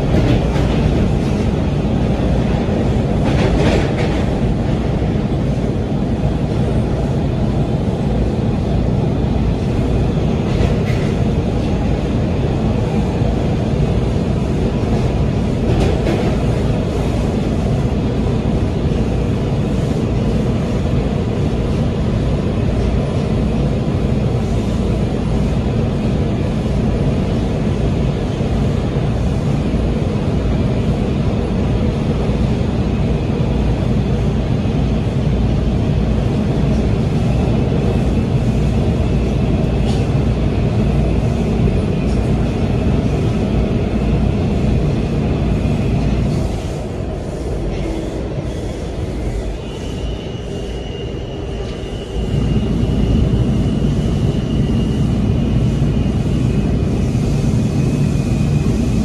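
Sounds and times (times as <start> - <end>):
train wheels rumbling on rail: 0.0 - 59.0.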